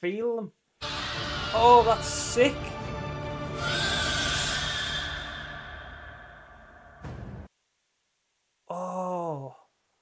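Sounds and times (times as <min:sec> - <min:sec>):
high rising creature screech: 0:00.8 - 0:02.5, 0:03.5 - 0:07.0
orchestral film score: 0:00.8 - 0:07.2.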